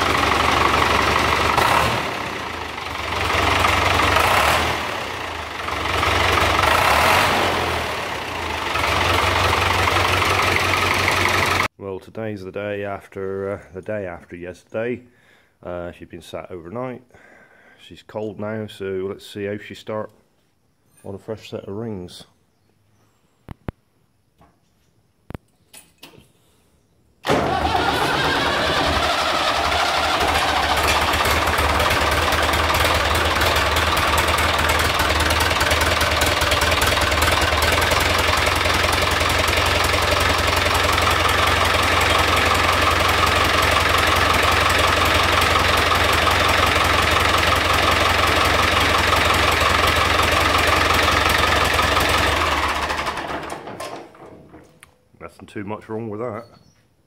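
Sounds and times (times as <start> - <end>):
diesel tractor engine starting and running: 0.0 - 11.8, 27.2 - 56.2.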